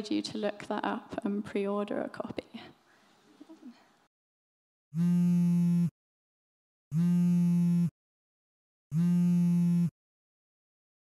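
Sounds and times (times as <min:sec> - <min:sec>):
mobile phone vibrating on table: 0:05.0 - 0:05.9, 0:06.9 - 0:07.9, 0:08.9 - 0:10.0.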